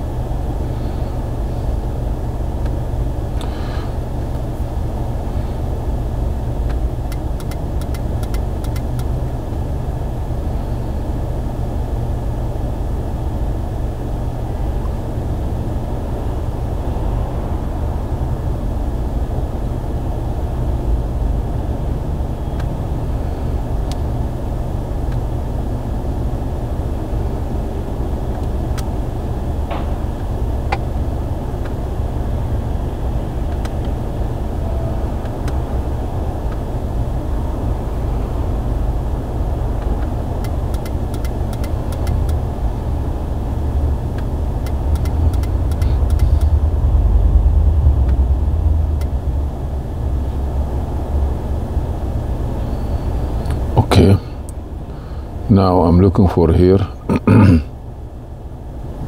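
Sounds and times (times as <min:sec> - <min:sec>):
car engine rumble inside cabin: 0:00.0 - 0:59.0.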